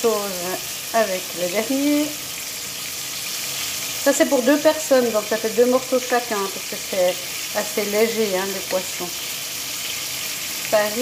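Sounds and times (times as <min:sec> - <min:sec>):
fish frying in oil: 0:00.0 - 0:11.0.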